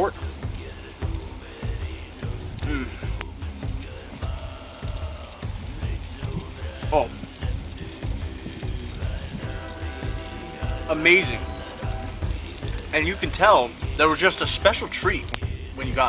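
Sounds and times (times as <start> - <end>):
cooking fire crackling: 0.0 - 16.0
faint music: 0.0 - 16.0.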